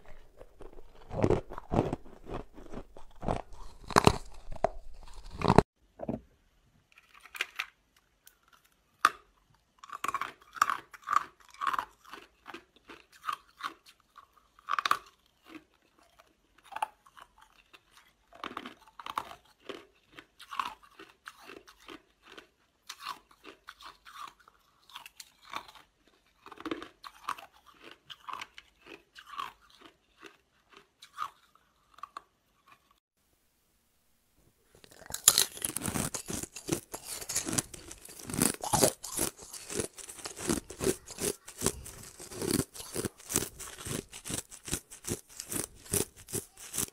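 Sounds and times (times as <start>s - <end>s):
ice crunching in mouth: 0.0s - 5.7s, 34.7s - 46.9s.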